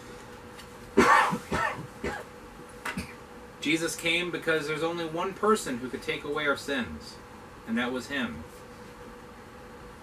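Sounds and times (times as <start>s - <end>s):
man clearing his throat: 1.0s - 2.3s, 2.9s - 3.2s.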